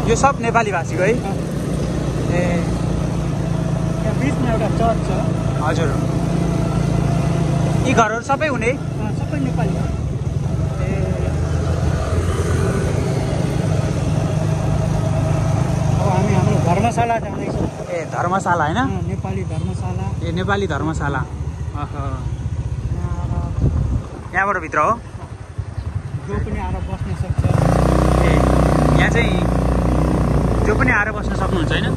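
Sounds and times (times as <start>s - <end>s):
road noise: 0.0s - 31.9s
vehicle engine humming: 0.0s - 31.9s.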